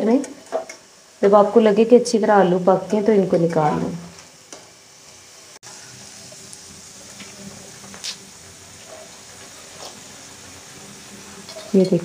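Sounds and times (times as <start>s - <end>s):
food deep-frying in oil: 0.0s - 12.0s.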